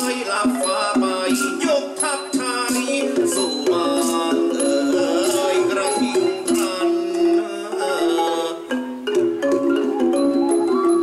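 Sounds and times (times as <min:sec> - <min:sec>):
percussion strikes: 0:00.0 - 0:11.0
ensemble bending melody line: 0:02.4 - 0:11.0.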